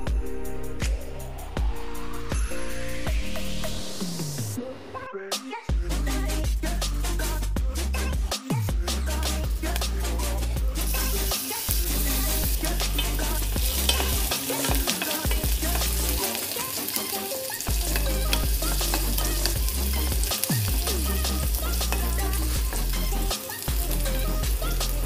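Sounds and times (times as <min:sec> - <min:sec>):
bass backing track: 0:00.0 - 0:04.5, 0:05.7 - 0:16.2, 0:17.7 - 0:25.0
garlic sizzling in oil: 0:10.8 - 0:25.0
spatula scraping metal pan: 0:11.2 - 0:23.3.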